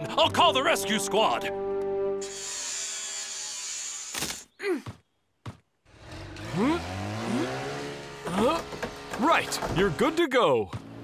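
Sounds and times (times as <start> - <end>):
person groaning: 4.6 - 4.9, 6.5 - 7.6, 8.3 - 8.6.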